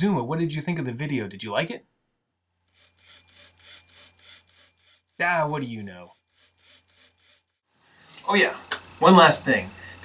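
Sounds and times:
robot motors whirring in pulses: 2.7s - 5.2s, 6.0s - 7.6s.

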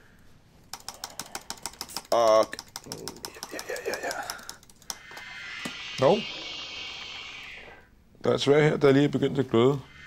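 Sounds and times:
laptop keyboard clicking: 0.7s - 5.0s.

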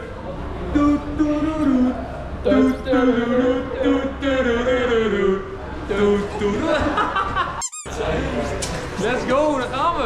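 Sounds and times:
group talking and laughing: 5.6s - 9.7s
quick high squeak: 7.6s - 7.9s.

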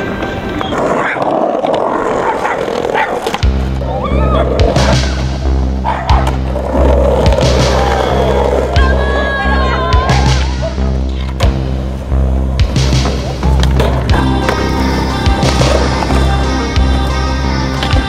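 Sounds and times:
skateboard wheels rolling on concrete: 0.0s - 18.0s
synth music with steady bass: 4.1s - 17.8s.

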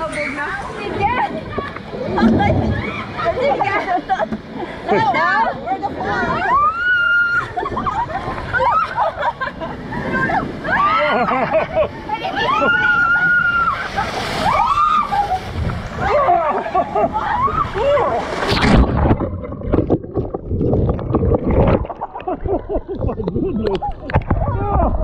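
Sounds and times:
water rushing in a chute: 0.0s - 22.2s
people screaming: 6.3s - 7.8s, 10.0s - 11.4s, 12.3s - 18.4s.

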